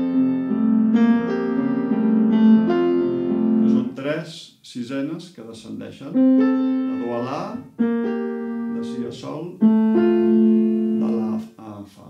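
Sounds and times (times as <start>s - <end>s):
grand piano playing slowly: 0.0s - 4.0s, 6.1s - 11.5s.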